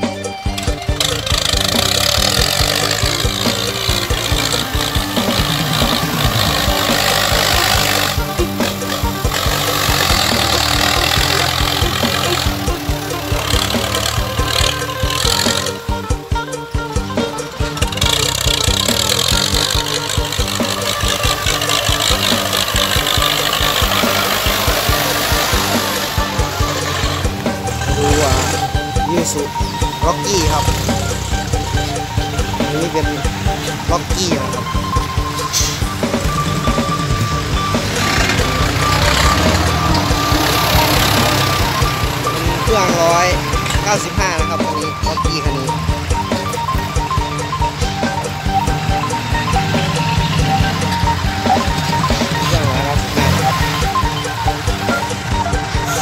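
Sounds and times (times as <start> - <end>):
music: 0.0 - 56.0
tractor engine under load: 0.0 - 56.0.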